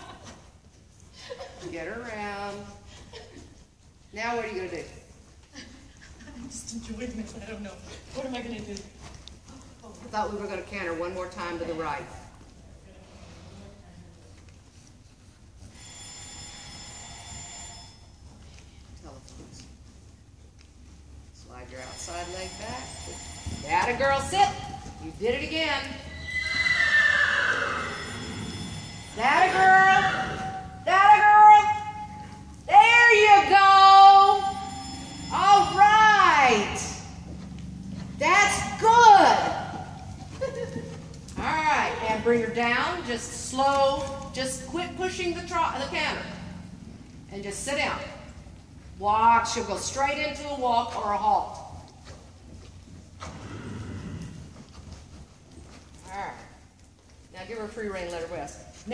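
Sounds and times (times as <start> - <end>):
horse whinnying: 25.9 - 37.0, 53.2 - 54.6.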